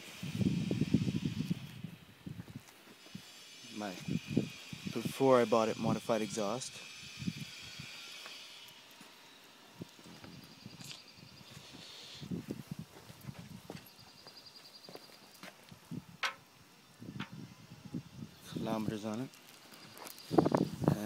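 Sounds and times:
soft footsteps on paving stones: 8.2 - 9.2, 9.8 - 15.8.

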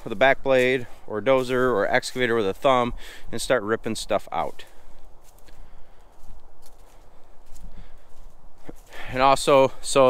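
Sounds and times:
footsteps on dry leaves: 0.0 - 10.0.

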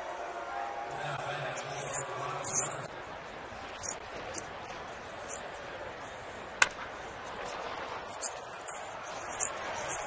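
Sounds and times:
crowd murmur: 0.0 - 10.0
bat cracking against ball: 6.6 - 7.0.

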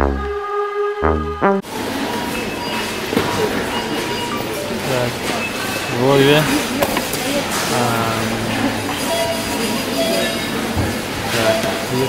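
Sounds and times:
shop floor background noise: 1.6 - 12.0.

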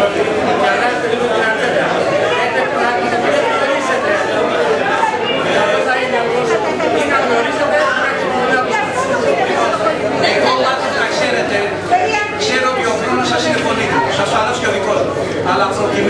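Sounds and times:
people arguing over each other: 0.6 - 15.2.

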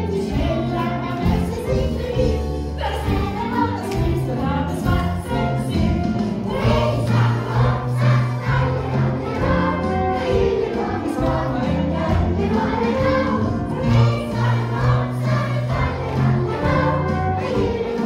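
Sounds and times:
live band playing: 0.0 - 18.0
group singing: 4.6 - 18.0.

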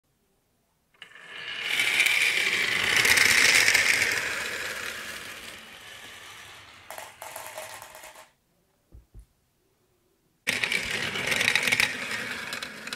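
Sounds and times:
marbles rolling down a marble run: 1.0 - 8.3, 10.5 - 12.9.

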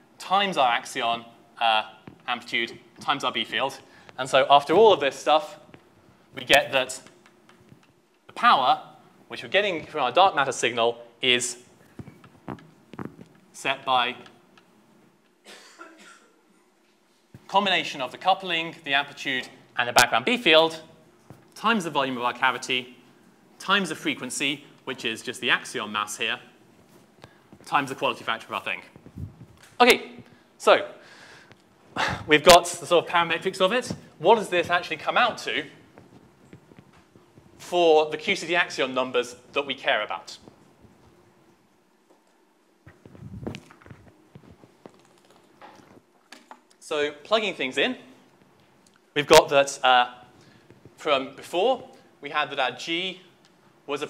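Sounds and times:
footsteps on hard floor: 11.9 - 13.4, 33.8 - 37.6, 42.9 - 46.0
faint cough: 15.4 - 16.7.

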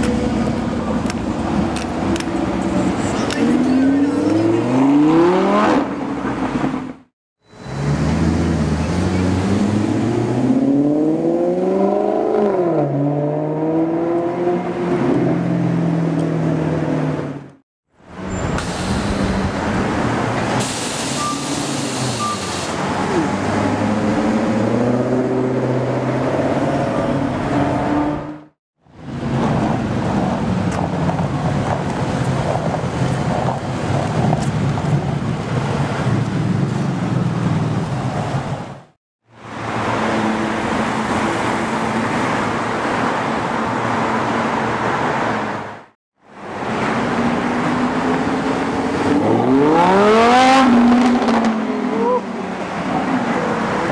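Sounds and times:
street traffic noise: 0.0 - 53.9
car accelerating away: 3.4 - 5.9, 48.8 - 52.3
car engine revving: 47.0 - 52.1.

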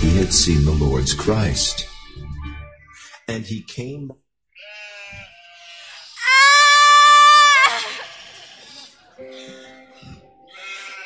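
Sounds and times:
high voice-like cry: 5.7 - 8.8.

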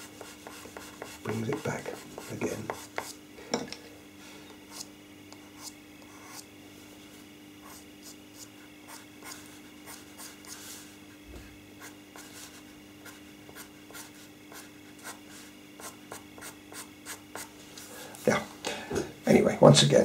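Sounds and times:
pencil scratching on paper: 0.0 - 3.2, 5.5 - 6.5, 7.6 - 10.8, 11.8 - 17.5.

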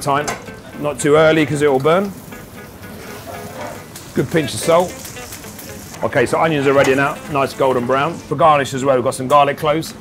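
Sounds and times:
faint background music: 0.0 - 10.0
onions sizzling in a frying pan: 1.8 - 8.3.

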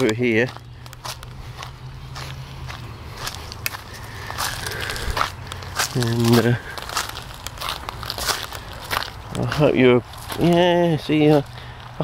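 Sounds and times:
footsteps crunching dry leaves: 0.0 - 12.0.

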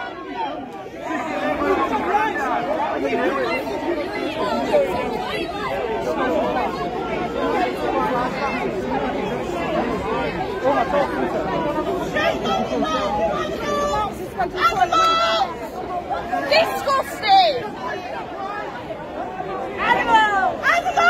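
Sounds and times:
crowd of protesters calling out: 0.0 - 21.0.

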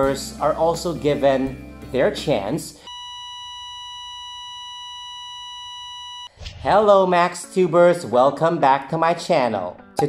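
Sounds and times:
electronic test tone: 2.9 - 6.4.

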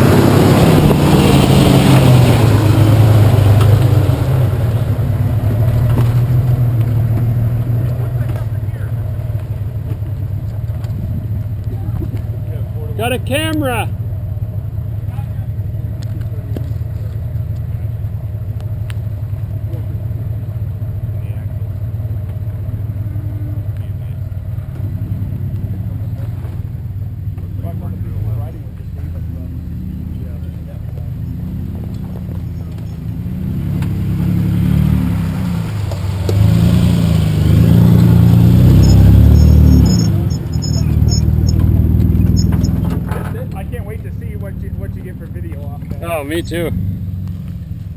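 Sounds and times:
off-road vehicle engine crawling: 0.0 - 47.9.

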